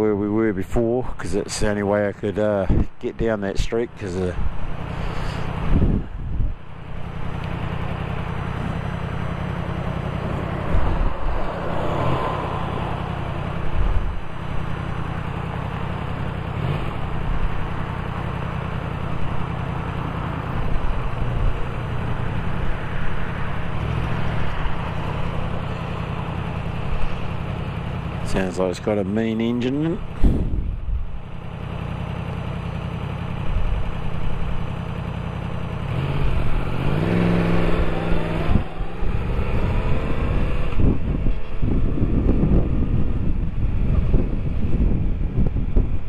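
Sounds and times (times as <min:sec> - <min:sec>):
road noise: 0:00.0 - 0:46.0
motorcycle engine running: 0:02.2 - 0:46.0
wind on microphone: 0:05.6 - 0:06.6, 0:10.5 - 0:14.2, 0:30.1 - 0:31.2, 0:37.5 - 0:46.0.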